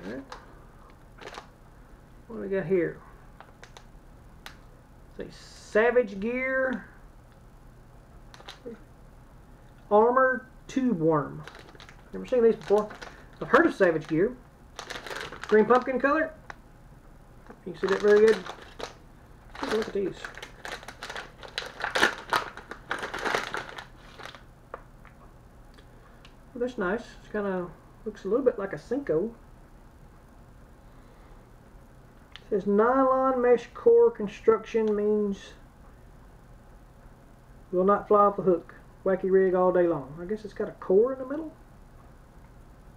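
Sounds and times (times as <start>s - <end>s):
plastic bag crinkling: 1.2s - 1.5s, 3.4s - 4.6s, 8.3s - 8.8s, 11.4s - 16.2s, 17.6s - 24.5s
plastic package clicks: 1.2s - 1.5s, 3.4s - 4.6s, 8.3s - 8.7s, 11.4s - 14.2s, 14.8s - 15.9s, 17.8s - 24.8s.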